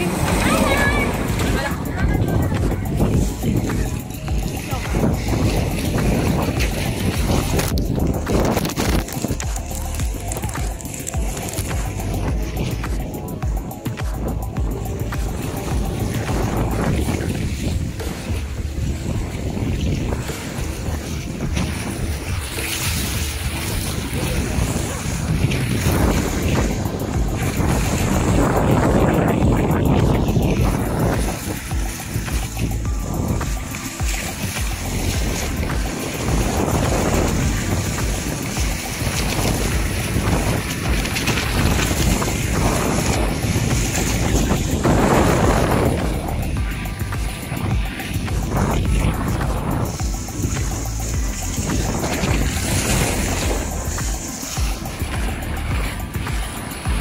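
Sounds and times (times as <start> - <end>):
rushing water on slide: 0.0 - 57.0
wind buffeting microphone: 0.0 - 57.0.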